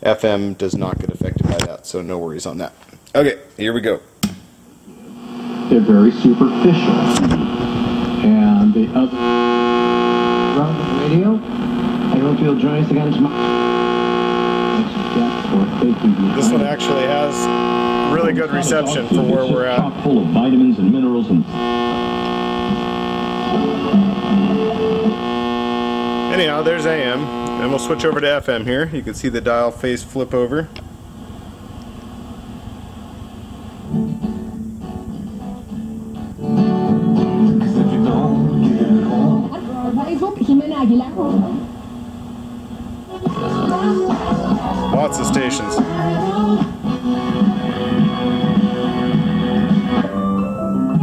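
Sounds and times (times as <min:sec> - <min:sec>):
held music chord from radio: 0:04.9 - 0:28.4, 0:31.2 - 0:40.2, 0:41.1 - 0:50.3
music from car radio: 0:43.1 - 0:50.3.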